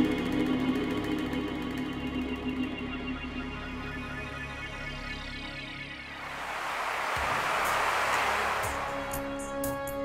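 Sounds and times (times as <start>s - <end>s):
sustained background music: 0.0s - 10.0s.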